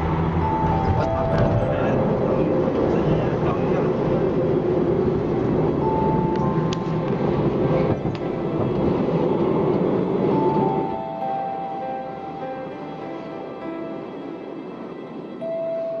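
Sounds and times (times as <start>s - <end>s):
machinery rumbling: 0.0s - 15.3s.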